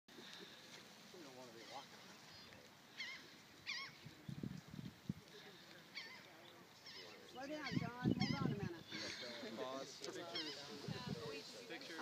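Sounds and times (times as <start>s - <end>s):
wavering bird calls: 1.6s - 4.3s, 5.8s - 10.9s
wind rumbling on microphone: 3.8s - 5.4s, 7.4s - 9.0s, 10.6s - 11.6s.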